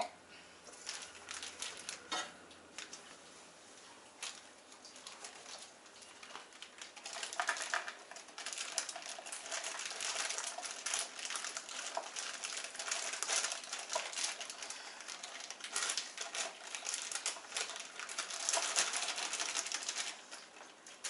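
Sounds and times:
plastic bag crinkling: 0:00.7 - 0:03.1, 0:04.1 - 0:21.0.

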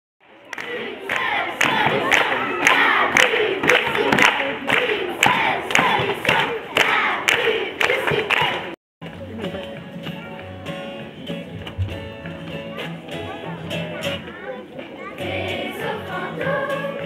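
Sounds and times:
children shouting and chanting: 0:00.5 - 0:08.7, 0:14.2 - 0:17.0.

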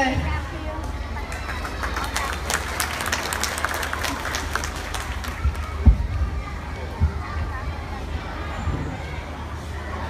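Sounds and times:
audience applauding: 0:01.3 - 0:05.8.

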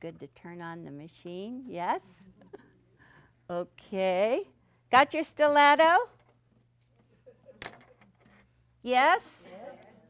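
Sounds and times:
woman speaking: 0:00.0 - 0:02.2, 0:03.5 - 0:06.1, 0:08.8 - 0:10.0.

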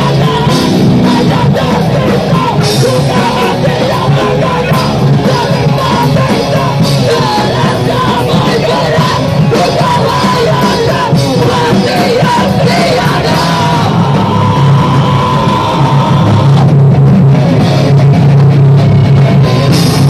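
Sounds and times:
shouted vocals: 0:00.0 - 0:16.8
live hardcore band playing: 0:00.0 - 0:20.0.

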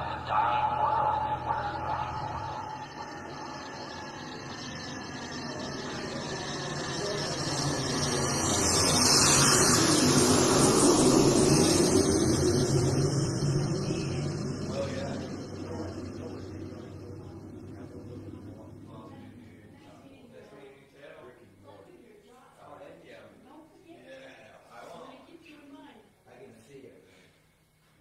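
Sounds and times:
synthesizer noise wash: 0:00.0 - 0:20.2.

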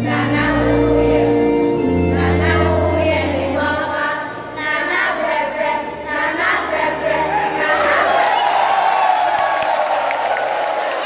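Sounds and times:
crowd cheering and shouting: 0:07.1 - 0:11.0.

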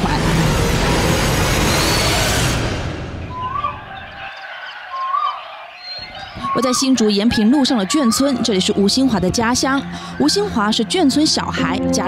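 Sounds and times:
bird whistled call: 0:03.3 - 0:06.9.

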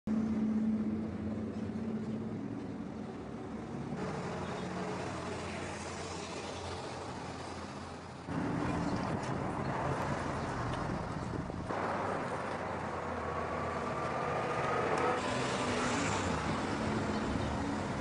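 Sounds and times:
street traffic: 0:00.1 - 0:18.0.

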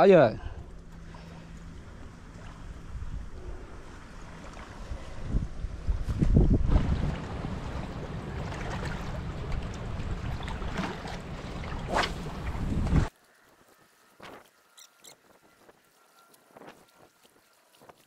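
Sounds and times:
wind buffeting microphone: 0:02.0 - 0:13.1.

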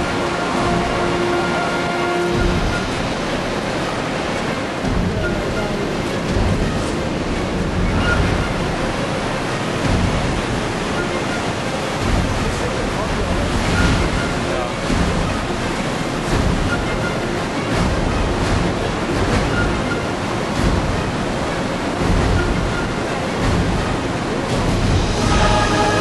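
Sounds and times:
river rushing: 0:00.0 - 0:26.0.

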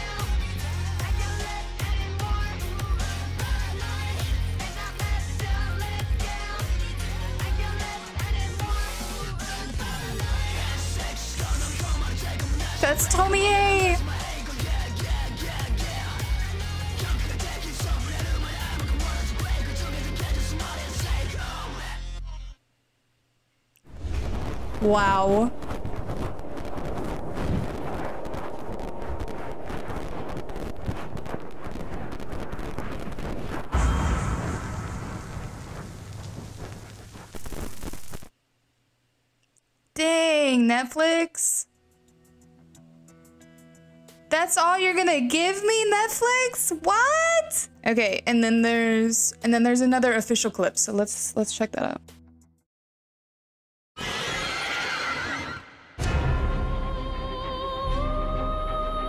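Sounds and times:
crackling glitchy static: 0:23.8 - 0:38.4
heavy low boom: 0:23.9 - 0:37.7
low rumble: 0:23.9 - 0:38.2.

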